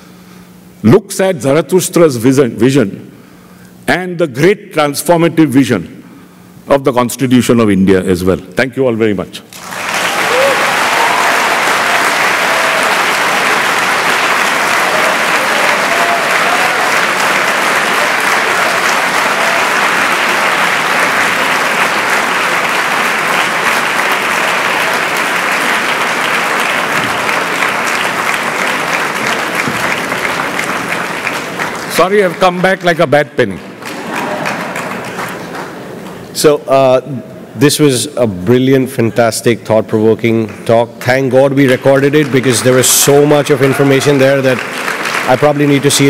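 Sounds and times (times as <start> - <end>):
voices among clapping: 9.6 - 32.4, 33.8 - 35.8, 43.6 - 45.4
audience applauding: 9.6 - 36.2, 41.0 - 46.0.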